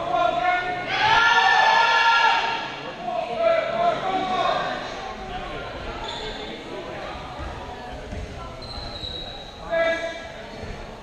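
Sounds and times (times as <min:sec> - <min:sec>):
people's voices: 0:00.0 - 0:11.0
balls bouncing on wooden floor: 0:07.4 - 0:09.0.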